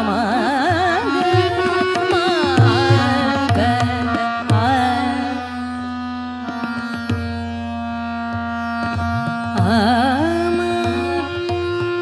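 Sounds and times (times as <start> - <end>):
woman singing classical vocals: 0.0 - 5.6, 9.5 - 12.0
tabla strokes: 0.0 - 12.0.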